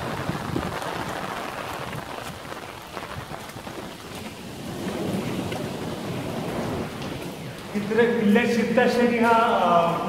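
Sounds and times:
steady rushing noise: 0.0s - 10.0s
man speaking: 7.7s - 10.0s.

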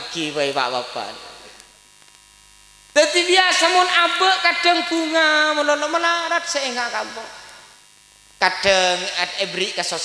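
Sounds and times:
man speaking into a microphone: 0.0s - 1.6s, 3.0s - 7.6s, 8.4s - 10.0s
faint electrical hum: 0.0s - 10.0s.

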